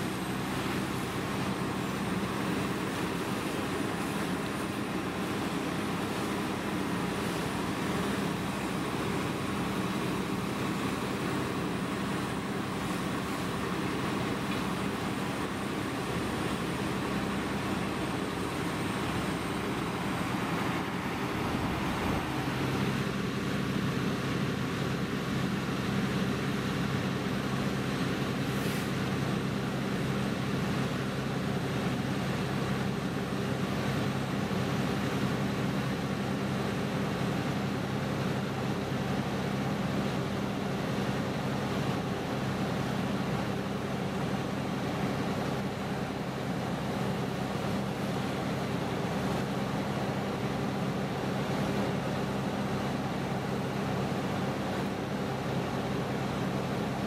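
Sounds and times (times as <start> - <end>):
fire engine pump droning: 0.0 - 57.0
broad hiss of water: 27.5 - 37.7.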